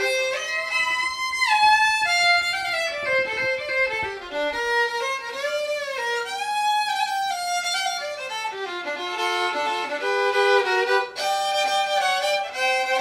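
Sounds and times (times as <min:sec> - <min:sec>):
solo violin: 0:00.0 - 0:13.0.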